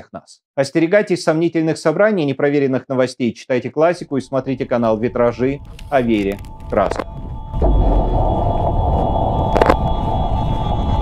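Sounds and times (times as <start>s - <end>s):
deep rumbling drone: 4.0s - 11.0s
sharp hit: 7.4s - 11.0s.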